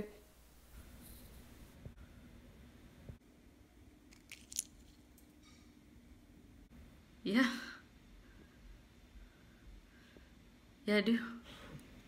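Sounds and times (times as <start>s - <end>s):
pistachio shells cracking: 4.1s - 5.3s.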